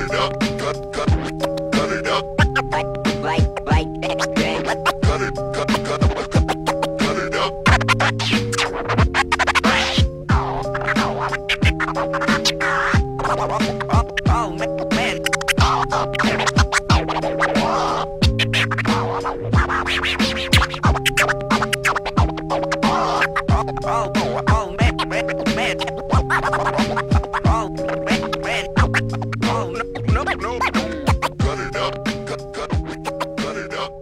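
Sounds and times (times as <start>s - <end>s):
looped beat: 0.0s - 34.0s
turntable scratching: 0.0s - 34.0s.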